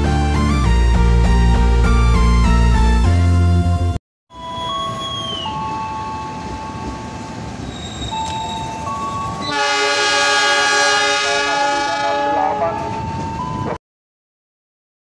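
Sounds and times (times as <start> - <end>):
diesel locomotive horn: 9.4 - 13.0.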